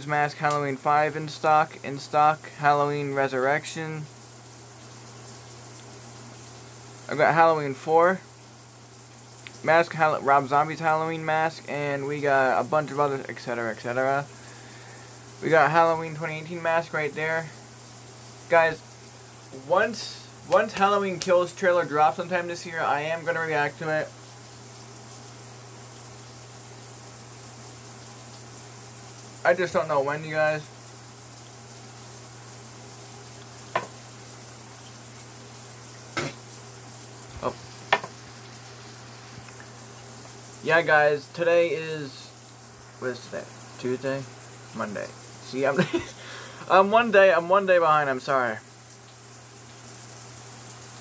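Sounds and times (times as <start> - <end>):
steady background hiss: 0.0 - 51.0.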